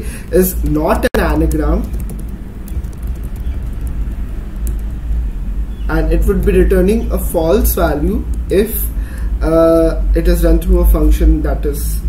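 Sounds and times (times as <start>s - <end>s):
low background rumble: 0.0s - 12.0s
computer keyboard clicks: 1.4s - 5.0s.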